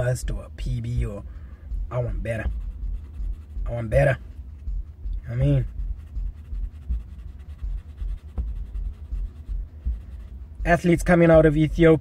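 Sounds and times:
pencil scratching on paper: 0:02.4 - 0:03.5, 0:06.0 - 0:10.3
soft bumps of pad handled: 0:07.8 - 0:10.2.

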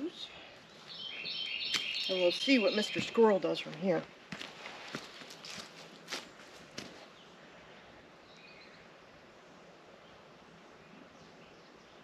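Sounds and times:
outdoor background hiss: 0:00.0 - 0:12.0
bird chirp: 0:00.6 - 0:03.3, 0:08.2 - 0:08.9
footsteps: 0:02.8 - 0:07.1
rustling: 0:04.3 - 0:07.1.

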